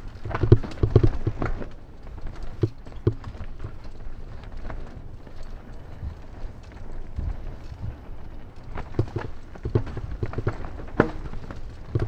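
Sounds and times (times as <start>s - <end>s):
bike wheels and frame rattling: 0.0s - 12.0s
tyres rumbling on dirt: 0.0s - 12.0s.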